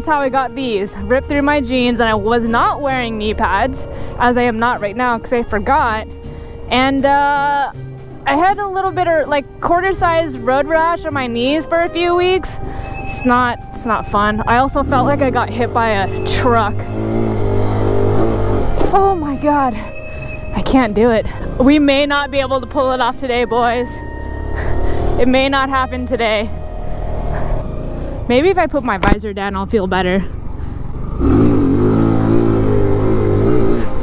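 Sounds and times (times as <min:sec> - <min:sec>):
motorcycle engine revving: 0:00.0 - 0:34.0
motorcycle engine at high revs: 0:14.8 - 0:18.9, 0:30.9 - 0:34.0.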